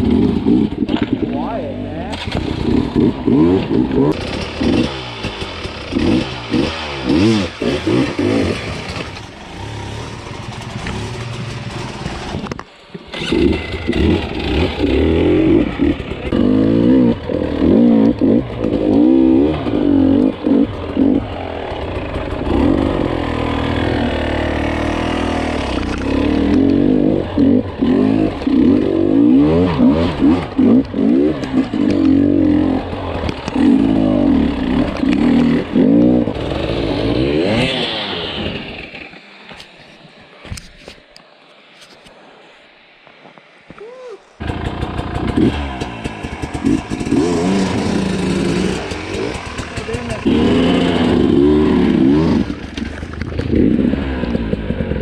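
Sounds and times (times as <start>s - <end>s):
dirt bike engine revving: 0.0s - 39.3s, 44.4s - 55.0s.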